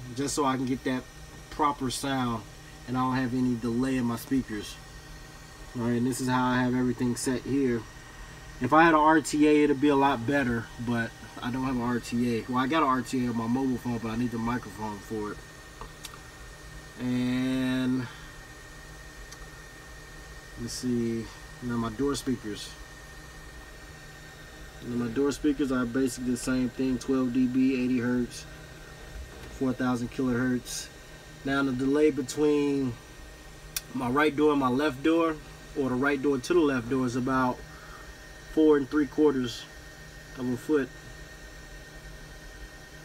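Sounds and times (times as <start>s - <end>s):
man talking: 0.0s - 4.8s, 5.7s - 7.9s, 8.6s - 15.4s, 17.0s - 18.2s, 20.6s - 22.8s, 24.8s - 28.5s, 29.5s - 33.0s, 33.8s - 37.6s, 38.5s - 39.7s, 40.3s - 40.9s
low background hum: 0.0s - 43.0s.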